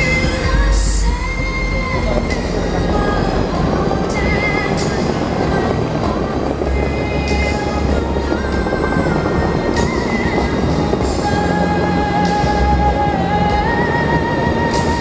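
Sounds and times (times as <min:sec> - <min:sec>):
music from loudspeakers: 0:00.0 - 0:15.0
water jets spraying: 0:00.0 - 0:15.0.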